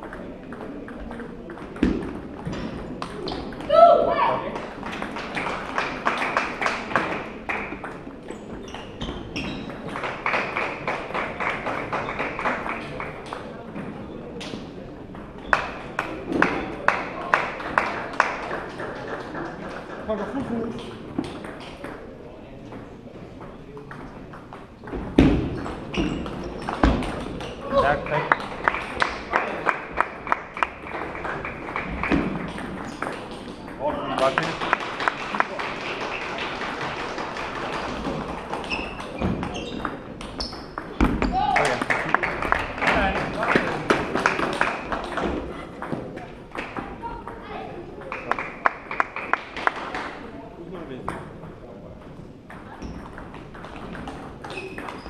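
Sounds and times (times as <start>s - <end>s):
table tennis balls clicking: 0.0s - 3.7s, 18.5s - 29.2s, 30.0s - 35.1s, 35.7s - 47.4s, 51.0s - 55.0s
busy hall noise: 0.0s - 55.0s.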